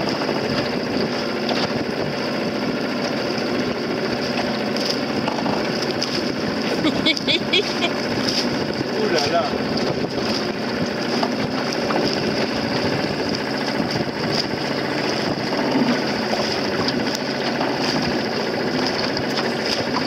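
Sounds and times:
outboard motor running: 0.0s - 20.0s.

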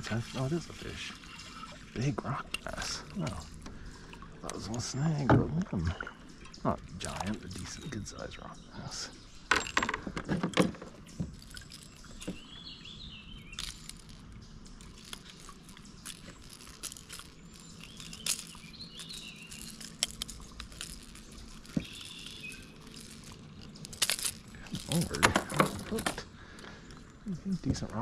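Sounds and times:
birds chirping: 0.0s - 28.0s
clicks and knocks in plastic kayak: 9.5s - 12.5s, 24.8s - 26.3s.

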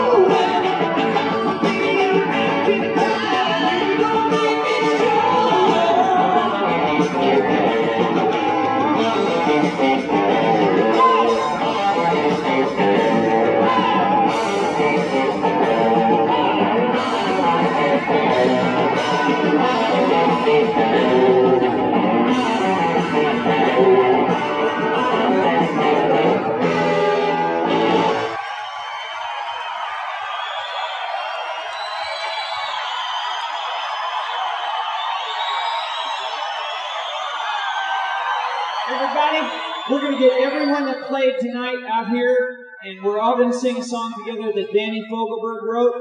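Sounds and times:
electric guitars: 0.0s - 28.4s
live rock band playing: 0.0s - 28.4s.

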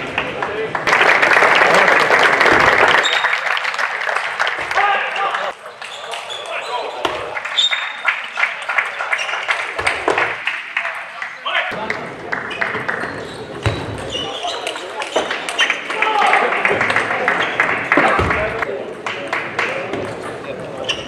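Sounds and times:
audience applause: 0.0s - 6.3s, 7.3s - 13.0s, 15.8s - 18.7s
short squeaks: 20.8s - 21.0s.

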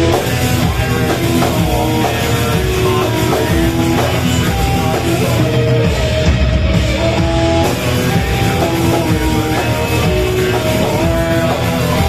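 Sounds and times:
death metal band playing live: 0.0s - 12.0s.

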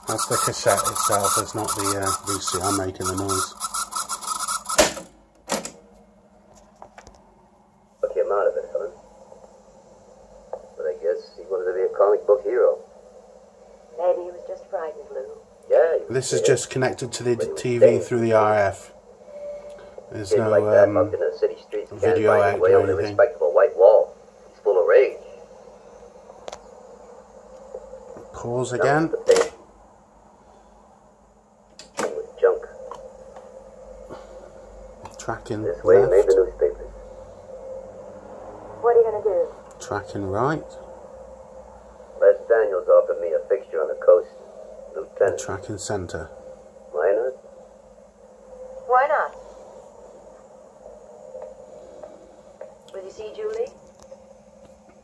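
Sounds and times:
film dialogue from tv speaker: 0.0s - 4.9s, 6.0s - 55.0s
cassette rasping while fast-forwarding: 0.0s - 5.1s
faint steady hum: 0.0s - 55.0s
voice speaking: 0.1s - 3.6s, 35.4s - 36.9s.

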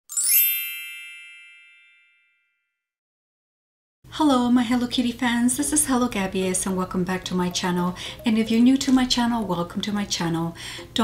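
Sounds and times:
bright chime ringing: 0.1s - 2.6s.

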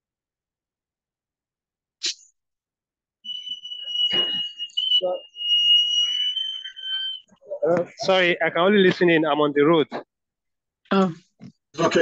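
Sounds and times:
high-pitched alarm tone: 3.2s - 8.8s.

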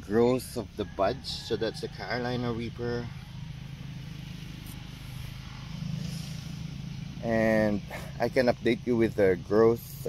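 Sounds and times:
engine humming steadily: 0.0s - 10.0s.

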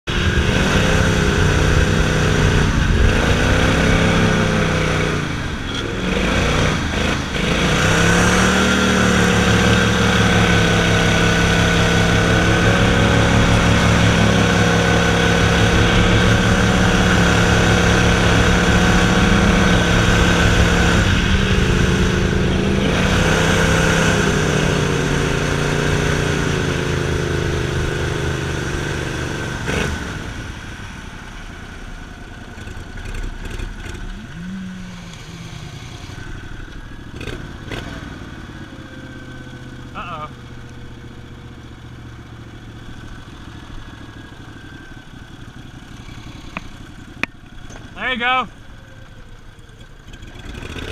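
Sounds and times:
boat motor running: 0.1s - 50.9s.

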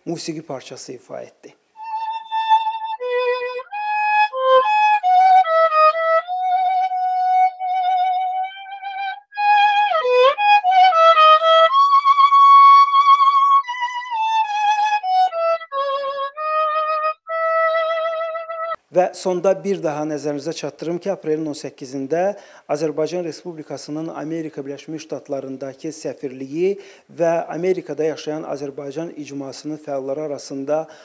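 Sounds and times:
solo violin slow melody: 1.8s - 18.8s.

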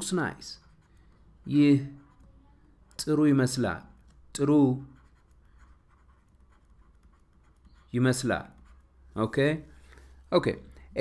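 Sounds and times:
pen scratching while writing: 0.4s - 2.5s, 4.0s - 8.9s.

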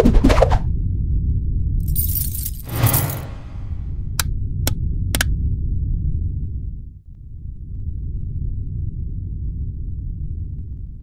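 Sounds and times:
deep low drone: 0.7s - 11.0s.

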